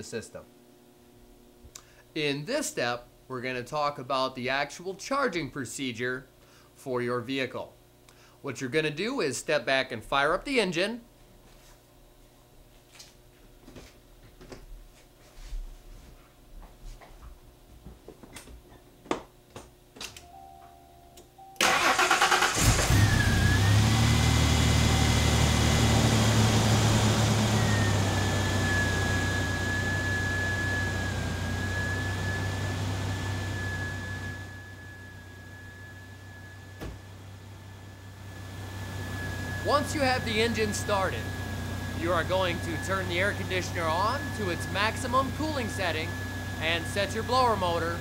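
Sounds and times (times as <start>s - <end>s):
car engine starting and running: 21.6s - 34.8s, 36.4s - 48.0s
high whine: 22.6s - 48.0s.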